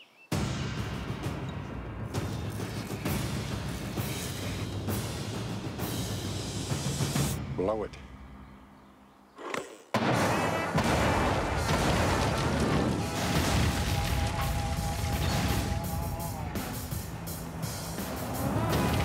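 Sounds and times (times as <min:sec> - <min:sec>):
background music: 0:00.3 - 0:09.3, 0:10.0 - 0:19.0
explosive blast: 0:10.0 - 0:16.3.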